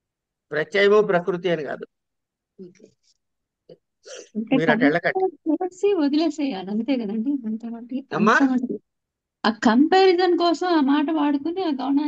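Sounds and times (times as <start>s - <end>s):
person speaking: 4.1s - 8.8s.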